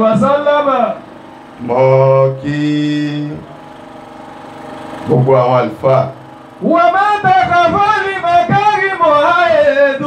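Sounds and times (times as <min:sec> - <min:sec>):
man chanting through loudspeakers: 0:00.0 - 0:01.0, 0:01.6 - 0:03.4, 0:05.1 - 0:10.0.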